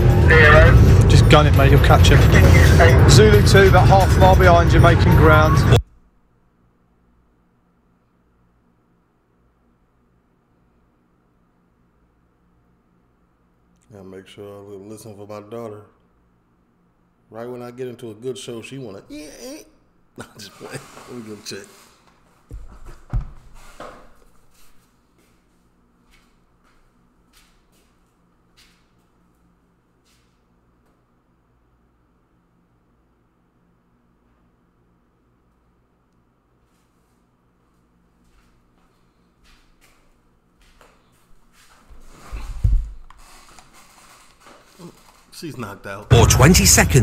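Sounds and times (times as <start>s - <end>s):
rustling and handling noises: 41.1s - 45.4s.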